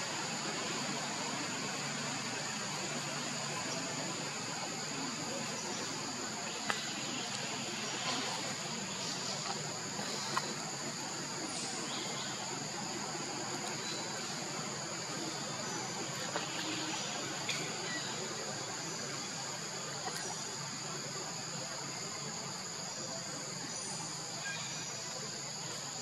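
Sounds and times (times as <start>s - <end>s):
insects buzzing: 0.0s - 26.0s.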